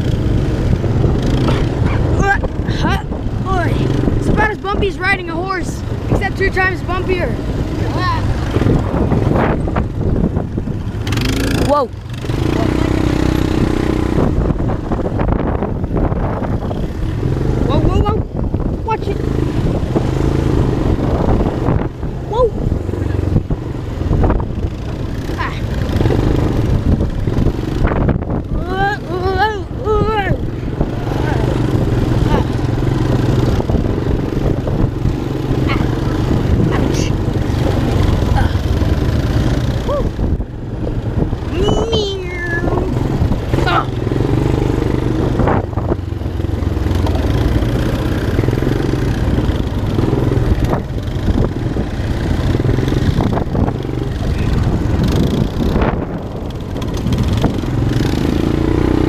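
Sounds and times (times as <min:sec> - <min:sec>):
quad bike engine running: 0:00.0 - 0:59.0.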